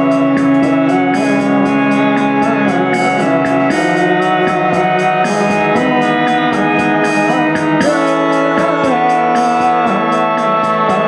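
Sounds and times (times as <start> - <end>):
electronic keyboard organ chords: 0.0 - 11.0.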